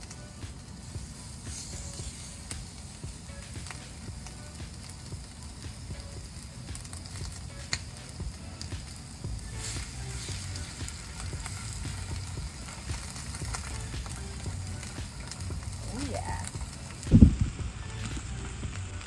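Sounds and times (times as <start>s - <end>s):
oil popping: 0.0s - 19.0s
steak sizzling in hot oil: 0.0s - 19.0s.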